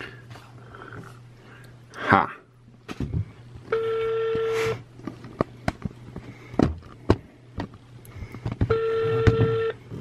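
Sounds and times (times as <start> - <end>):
phone ringback beep: 3.8 - 4.6, 8.7 - 9.8.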